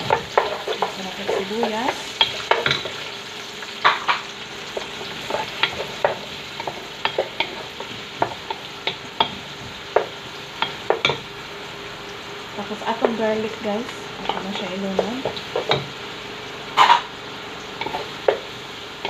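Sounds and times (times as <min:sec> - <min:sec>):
onions sizzling in oil: 0:00.0 - 0:19.0.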